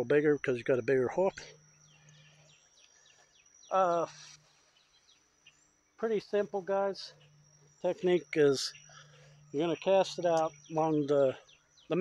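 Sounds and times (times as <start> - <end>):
faint bird chirps: 0.0 - 12.0
high-pitched insect drone: 0.0 - 12.0.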